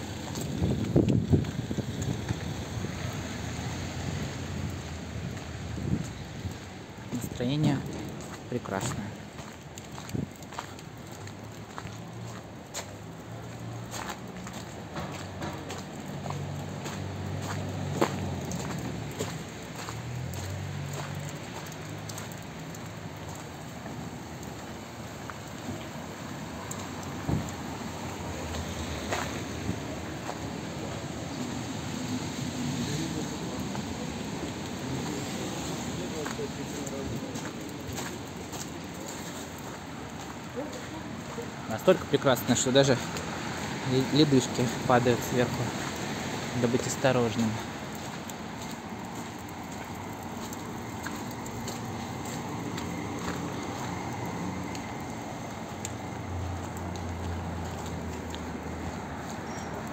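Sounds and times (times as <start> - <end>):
footsteps on wet pavement: 0.0 - 59.9
traffic: 0.0 - 59.9
voices of passers-by: 0.0 - 59.9.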